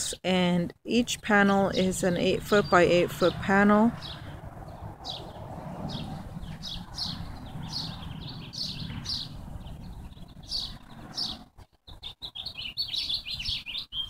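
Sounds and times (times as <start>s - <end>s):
small birds chirping: 0.9s - 14.0s.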